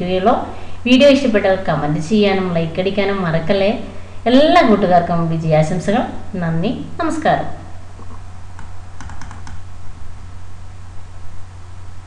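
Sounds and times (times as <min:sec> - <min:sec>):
steady low hum: 0:00.0 - 0:12.0
computer keys clicking: 0:08.6 - 0:09.7.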